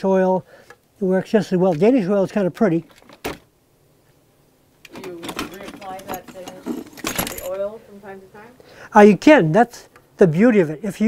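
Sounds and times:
tools clattering in plastic bin: 4.9s - 7.6s
quiet talking: 4.9s - 8.6s.

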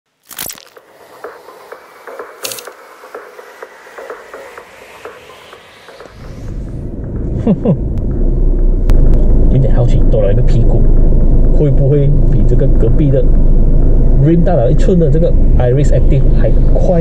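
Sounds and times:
whooshes: 0.7s - 12.3s
rising hiss: 0.8s - 8.0s
car engine rumbling: 0.8s - 17.0s.

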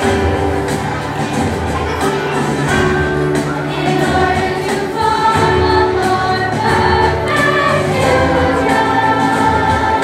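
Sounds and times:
choir singing: 3.1s - 10.0s.

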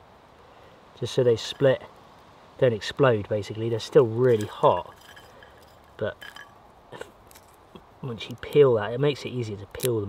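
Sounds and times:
chestnut shells cracking: 4.2s - 7.6s.

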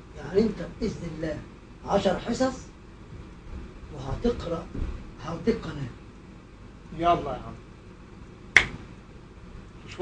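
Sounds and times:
sharp click: 8.6s - 8.8s.

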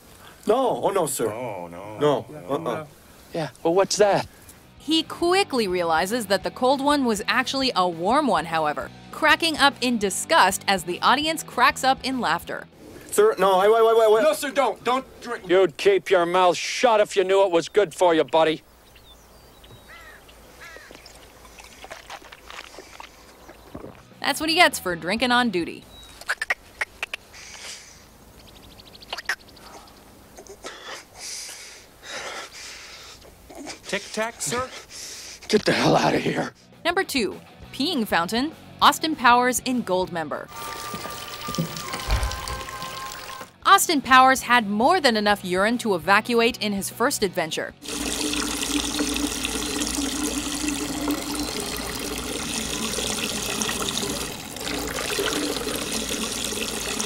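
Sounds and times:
urine splashing into liquid: 20.9s - 23.2s, 40.5s - 43.5s, 47.8s - 57.0s
man gagging and spluttering: 21.4s - 23.1s.

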